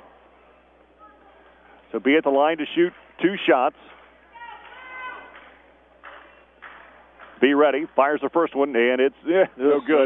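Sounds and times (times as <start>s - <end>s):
low crowd murmur: 0.0s - 2.0s.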